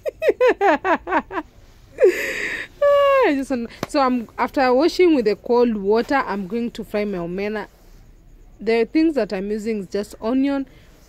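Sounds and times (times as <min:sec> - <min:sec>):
woman laughing: 0:00.0 - 0:03.4.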